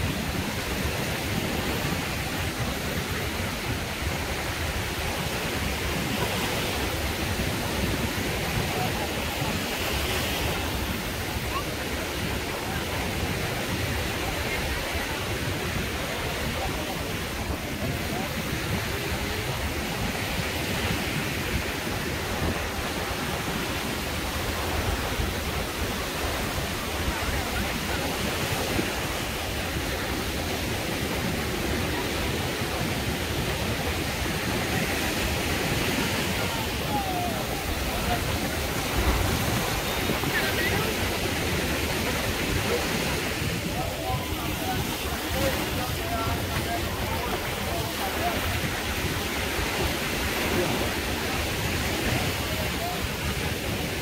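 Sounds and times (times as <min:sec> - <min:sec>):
people chatting: 0:00.0 - 0:54.0
small waves rushing: 0:00.0 - 0:54.0
wind: 0:00.0 - 0:54.0.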